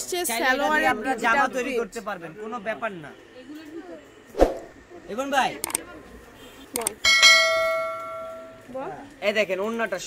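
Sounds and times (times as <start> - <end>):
double mouse click: 6.8 - 7.0
bell chime: 7.1 - 8.6.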